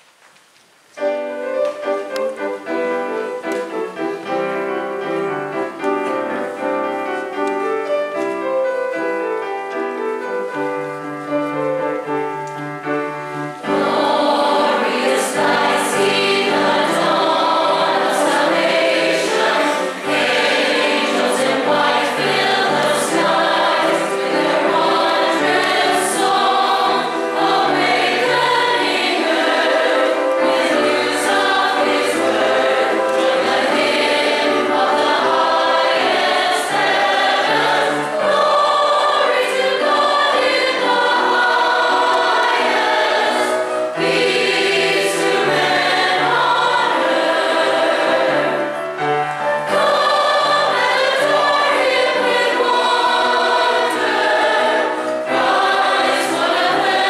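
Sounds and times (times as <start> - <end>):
choir singing in parts: 11.7 - 57.0.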